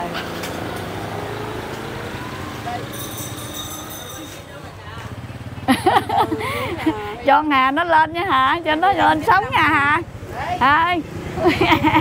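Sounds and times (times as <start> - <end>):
motorbike engine running: 3.2 - 12.0.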